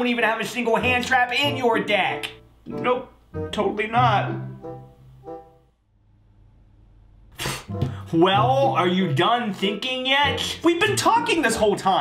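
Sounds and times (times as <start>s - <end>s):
man's sharp puff of breath: 7.3s - 8.1s.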